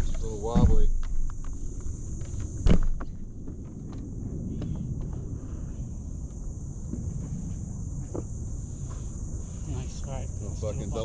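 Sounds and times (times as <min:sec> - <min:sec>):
high-pitched insect drone: 0:00.0 - 0:11.0.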